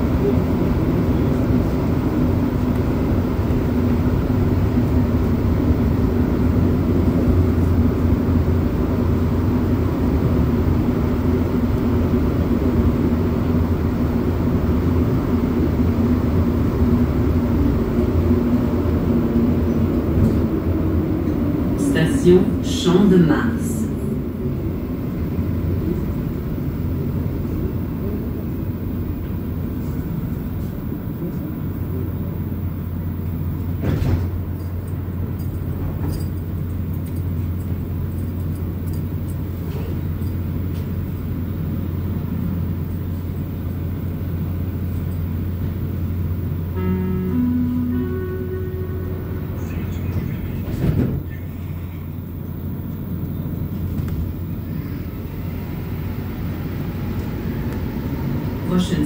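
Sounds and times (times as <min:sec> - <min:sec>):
train car hum: 0:00.0 - 0:59.0
rising door chime: 0:46.7 - 0:50.3.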